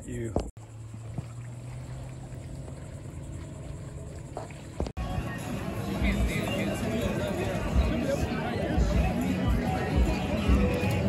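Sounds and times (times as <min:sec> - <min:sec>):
boat engine humming: 0:00.0 - 0:11.0
water noise: 0:00.0 - 0:11.0.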